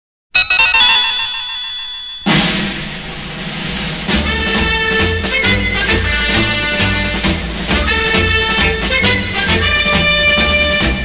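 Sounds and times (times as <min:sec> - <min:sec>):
percussive crash: 0:00.4 - 0:04.5
orchestral march: 0:02.3 - 0:11.0.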